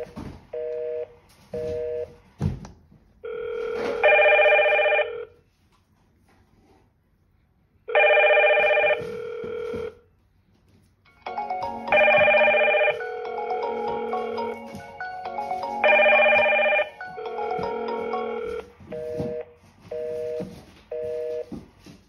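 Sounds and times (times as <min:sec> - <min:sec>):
intercom monitors ringing: 0:11.2 - 0:21.6.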